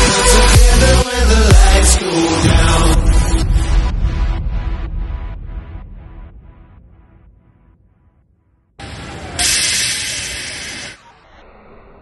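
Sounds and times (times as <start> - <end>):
loud steady hiss: 8.8 - 11.0.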